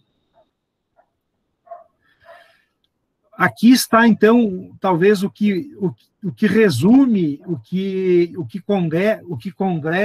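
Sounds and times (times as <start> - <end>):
dog barking faintly: 0.3 - 2.5.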